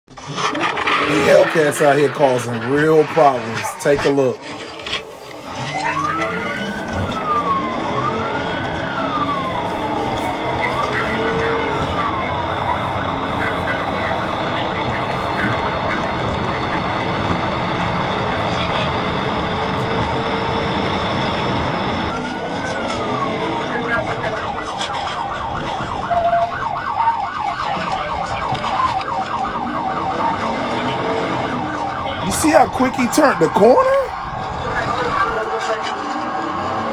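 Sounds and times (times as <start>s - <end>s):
car engine and road noise: 0.1s - 36.9s
police siren wailing and yelping: 0.2s - 36.9s.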